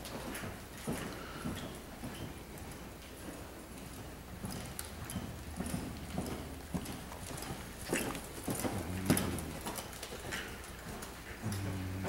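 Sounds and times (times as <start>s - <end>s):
horse hoofbeats on sand: 0.0s - 12.0s.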